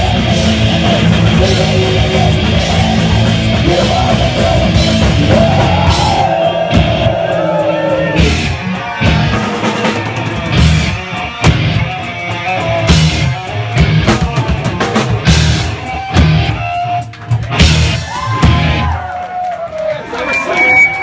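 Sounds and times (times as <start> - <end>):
punk rock band playing: 0.0 - 19.2.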